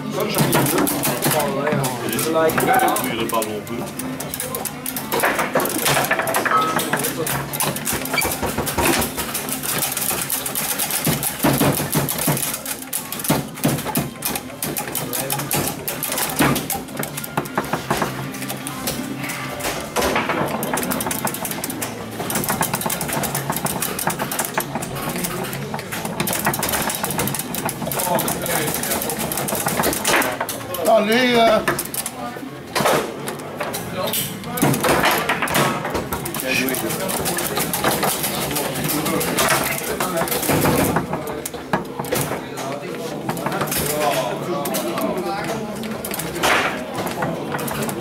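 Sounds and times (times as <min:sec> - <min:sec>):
voices chattering: 0:00.0 - 0:48.0
foosball ball cracking off figures: 0:00.1 - 0:03.5, 0:04.1 - 0:30.7, 0:32.7 - 0:48.0.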